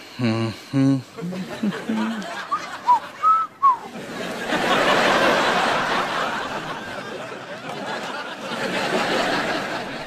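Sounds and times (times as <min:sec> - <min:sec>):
man humming: 0:00.0 - 0:02.2
man whistling: 0:02.5 - 0:03.8.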